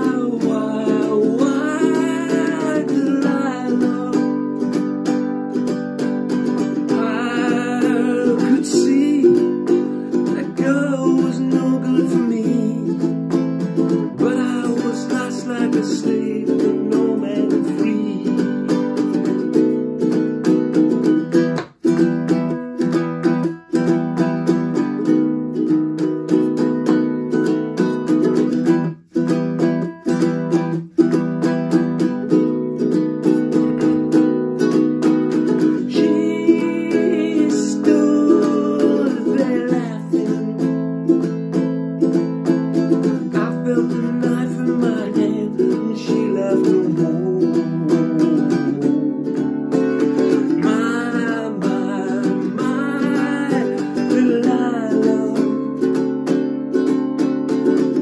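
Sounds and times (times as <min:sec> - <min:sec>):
man singing: 0:00.0 - 0:20.2, 0:34.6 - 0:58.0
ukulele strumming chords: 0:00.0 - 0:58.0.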